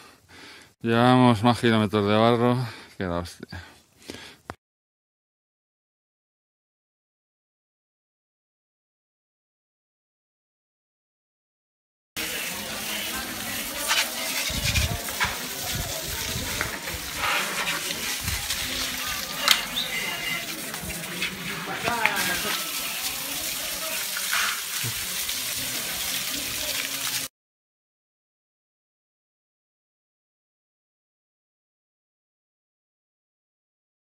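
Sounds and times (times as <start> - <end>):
indistinct voices talking: 12.2 - 26.9
hose water spraying on bike: 12.2 - 27.3.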